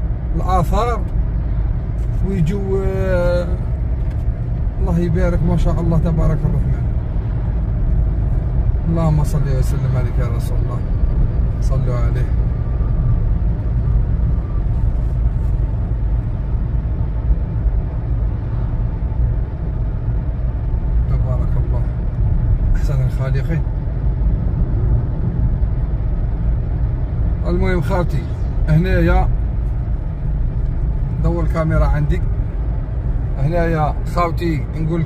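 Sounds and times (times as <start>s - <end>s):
car engine and tyres rumbling: 0.0s - 35.0s.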